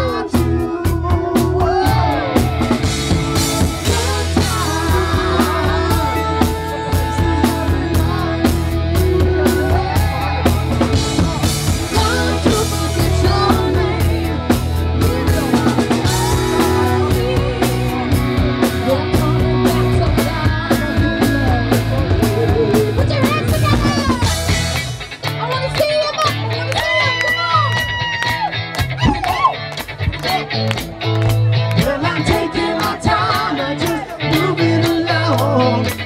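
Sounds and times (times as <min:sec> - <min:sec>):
bass guitar: 0:00.0 - 0:36.0
drum kit beat: 0:00.0 - 0:36.0
electric guitar: 0:00.0 - 0:36.0
woman singing: 0:03.8 - 0:24.5, 0:31.8 - 0:36.0.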